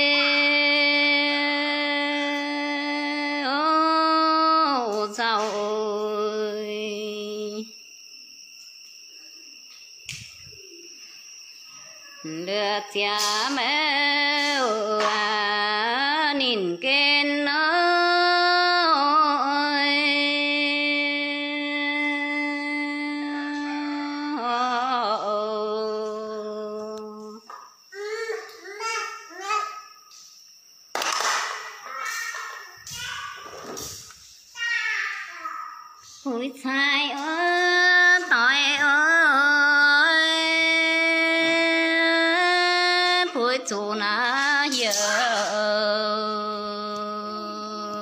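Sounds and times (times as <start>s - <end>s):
high voice singing unaccompanied: 0.0s - 7.7s, 12.2s - 29.8s, 31.8s - 33.4s, 34.6s - 48.0s.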